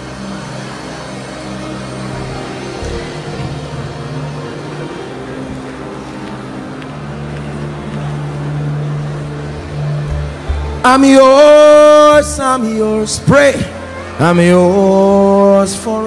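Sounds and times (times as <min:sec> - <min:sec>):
soft keyboard chords: 0:00.0 - 0:16.0
congregation praying aloud: 0:10.8 - 0:16.0.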